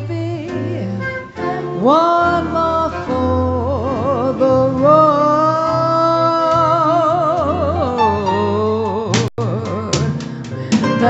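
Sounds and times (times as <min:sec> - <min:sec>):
live instrumental accompaniment: 0:00.0 - 0:11.0
woman singing into microphone: 0:00.0 - 0:11.0.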